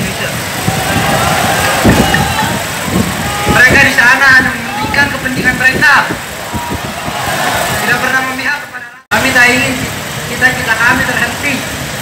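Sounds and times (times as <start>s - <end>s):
outdoor rumble: 0.0s - 8.4s.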